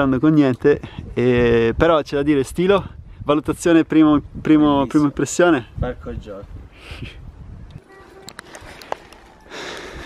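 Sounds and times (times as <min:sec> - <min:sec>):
close breath: 0:08.4 - 0:10.0.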